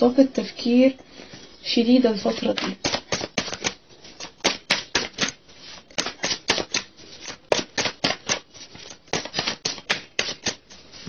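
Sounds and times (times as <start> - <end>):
cards being shuffled: 2.2 - 11.0.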